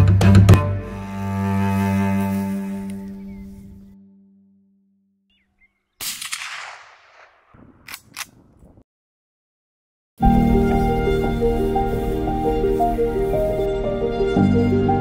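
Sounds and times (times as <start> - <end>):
low cello and double bass chord: 0.0 - 4.5, 10.2 - 15.0
sharp clicks: 6.0 - 8.5
suppressed rifle shot: 6.0 - 8.8.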